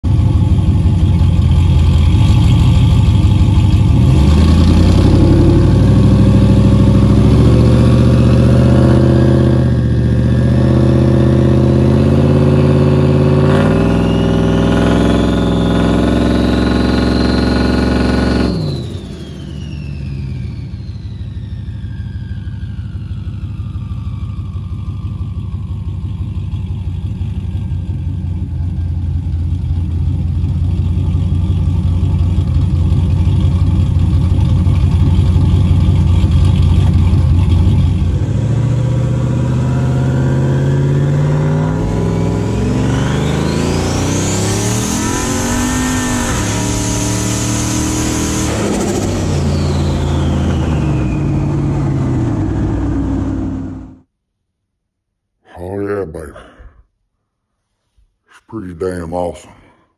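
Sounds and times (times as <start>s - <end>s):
engine revving: 0.0s - 21.8s, 27.5s - 54.1s
turbo whistle: 13.0s - 24.4s, 41.2s - 53.7s.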